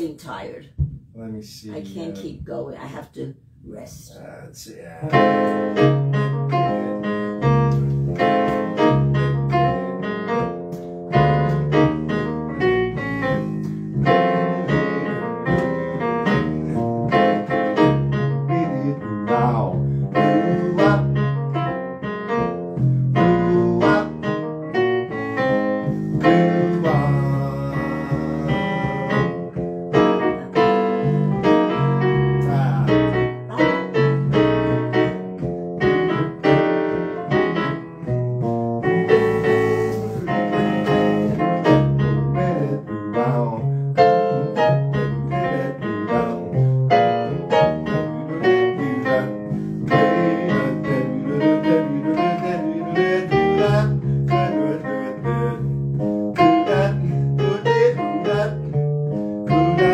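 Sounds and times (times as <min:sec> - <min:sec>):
piano playing quick notes: 0:04.9 - 0:42.5.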